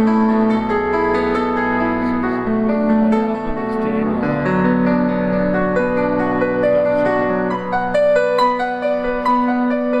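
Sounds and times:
slow solo piano: 0.0s - 10.0s.

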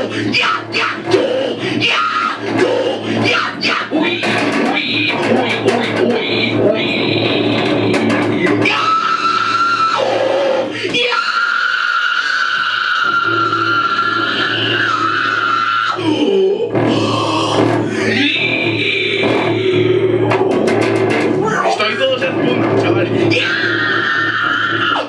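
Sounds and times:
distorted bass guitar: 0.0s - 25.0s
screamed and grunted vocals: 0.0s - 25.0s.

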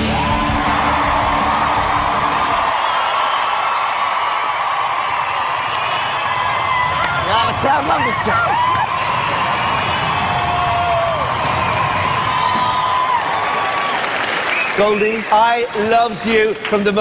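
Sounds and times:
backing music: 0.0s - 2.8s
audience cheering and whooping: 0.0s - 15.8s.

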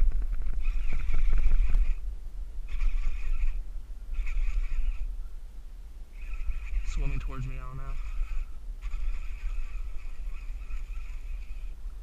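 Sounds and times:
fishing reel whirring: 0.0s - 5.1s, 6.1s - 12.0s
low rumble on microphone: 0.0s - 12.0s.

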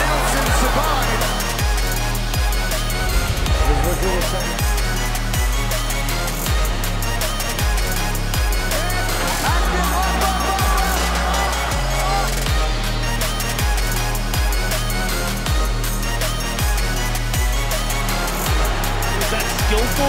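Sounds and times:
electronic music with heavy bass: 0.0s - 20.0s.

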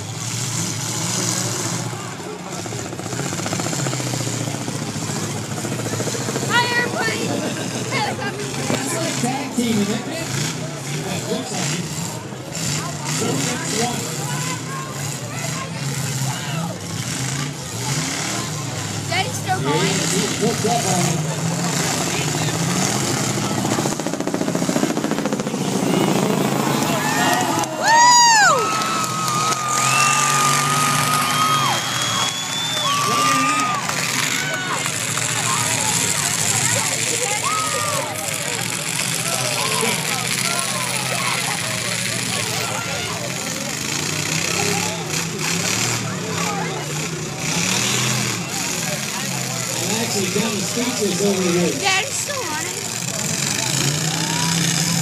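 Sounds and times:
car engines running: 0.0s - 55.0s
crowd talking and shouting: 0.0s - 55.0s.

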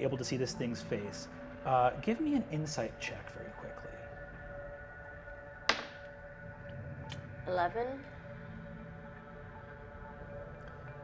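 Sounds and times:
soft ambient music: 0.0s - 11.0s
die landing on table: 5.7s - 6.0s.

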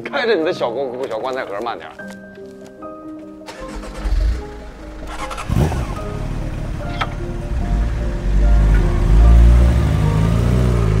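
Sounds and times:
background music: 0.0s - 11.0s
motorcycle engine riding off: 3.5s - 11.0s.

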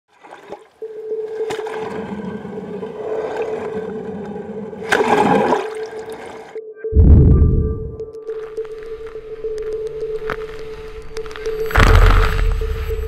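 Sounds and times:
water sloshing and splashing: 0.1s - 6.6s.

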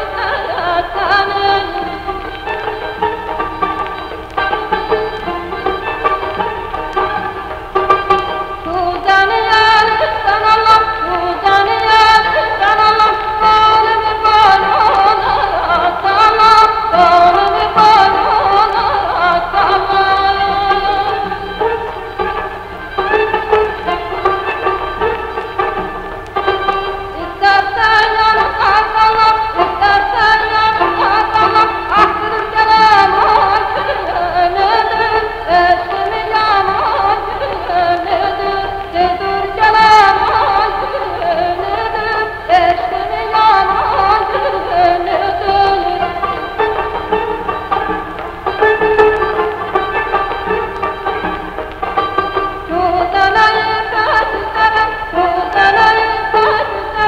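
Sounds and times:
instrumental accompaniment: 0.0s - 57.0s
plucked strings melody: 0.0s - 57.0s
woman singing folk song: 0.0s - 57.0s.

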